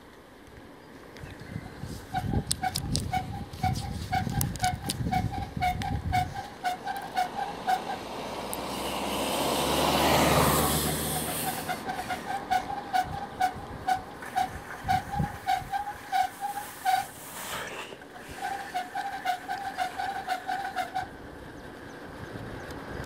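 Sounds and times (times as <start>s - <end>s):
bicycle ticking: 1.2s - 7.9s, 11.0s - 22.1s
vehicle passing: 1.6s - 21.6s.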